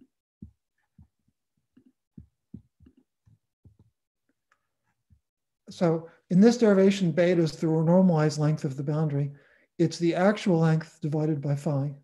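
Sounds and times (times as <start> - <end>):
low thumps on microphone: 2.1 - 3.9.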